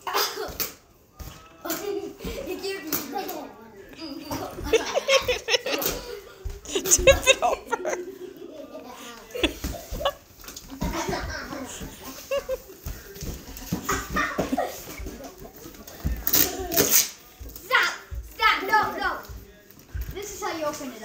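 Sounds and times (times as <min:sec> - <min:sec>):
children talking and laughing: 0:00.0 - 0:19.4, 0:20.0 - 0:21.0.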